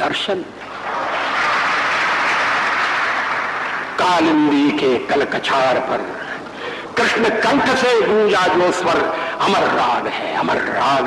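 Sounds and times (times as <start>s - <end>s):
audience applauding: 0.7s - 4.7s.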